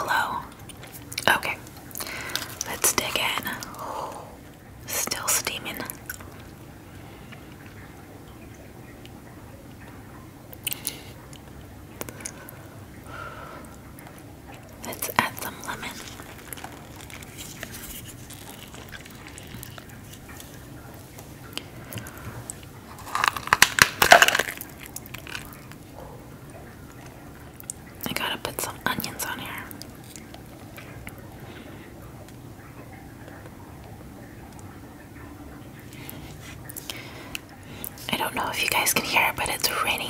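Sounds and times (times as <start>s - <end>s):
wet squishing: 0.5s - 4.8s, 5.8s - 32.5s, 34.5s - 38.5s
shell cracking: 1.7s - 3.7s, 15.3s - 25.8s.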